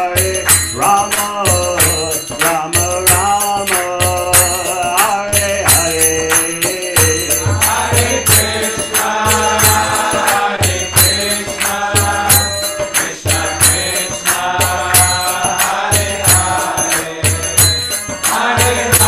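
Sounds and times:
man chanting: 0.0s - 11.3s
hand cymbals ringing: 0.0s - 19.0s.

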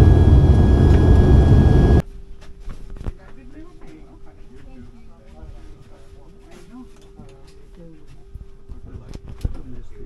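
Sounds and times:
airplane cabin hum: 0.0s - 2.0s.

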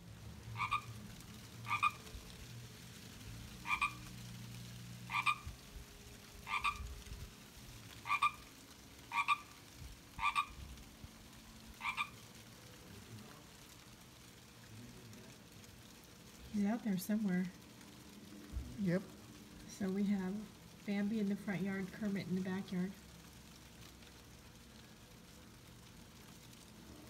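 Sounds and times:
frog croaking: 0.5s - 1.0s, 1.6s - 2.2s, 3.6s - 4.2s, 5.0s - 5.6s, 6.4s - 6.9s, 8.0s - 9.6s, 10.2s - 10.7s, 11.8s - 12.3s.

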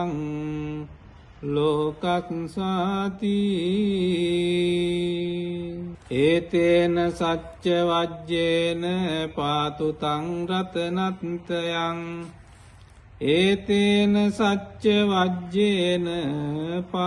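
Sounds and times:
person chanting: 0.0s - 12.6s, 13.2s - 17.0s.

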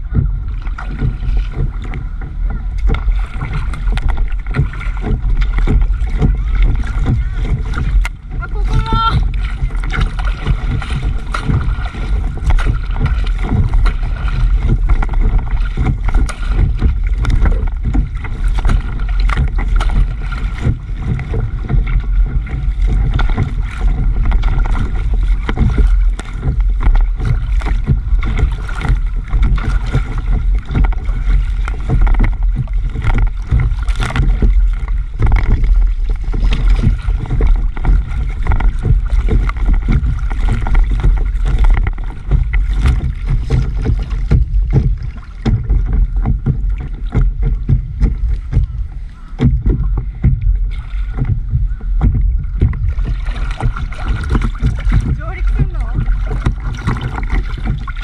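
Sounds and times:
low rumble of water and wind: 0.0s - 58.0s
water splashing against paddleboard: 0.0s - 58.0s.

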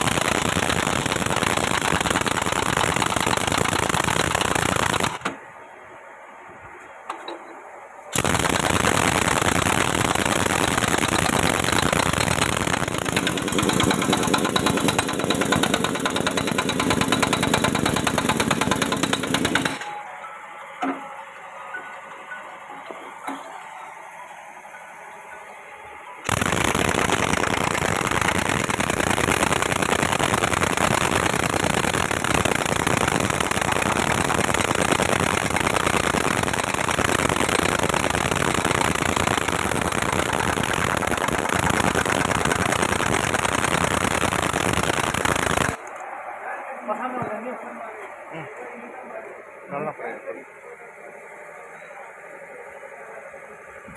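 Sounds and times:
pneumatic impact wrench hammering: 8.9s - 19.9s.

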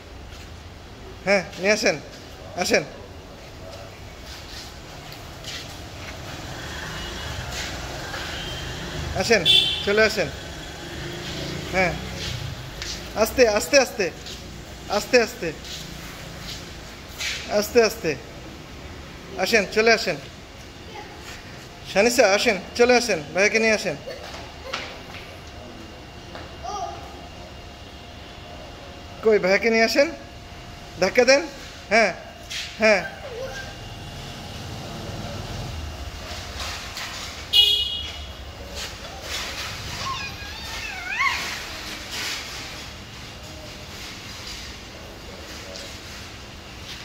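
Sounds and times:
stroller wheels rolling on concrete: 10.9s - 14.4s, 36.2s - 43.0s.

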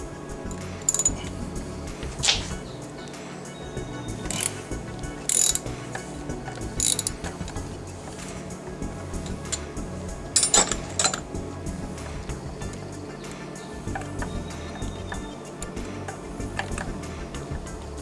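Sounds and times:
background music: 0.0s - 18.0s
socket ratchet clicking: 0.5s - 1.4s, 4.2s - 7.8s, 10.4s - 11.3s, 16.5s - 17.1s.

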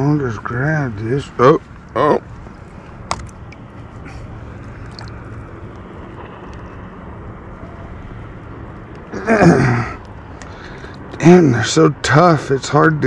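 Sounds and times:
outdoor background noise: 0.0s - 13.0s
man grunting with effort: 9.1s - 10.0s.

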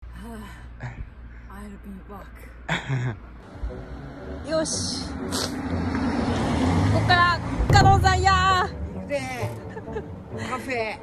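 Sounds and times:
car passing by: 3.4s - 9.6s.

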